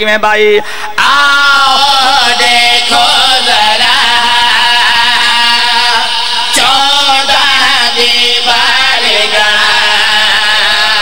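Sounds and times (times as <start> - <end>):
men chanting through loudspeaker: 0.3 - 11.0.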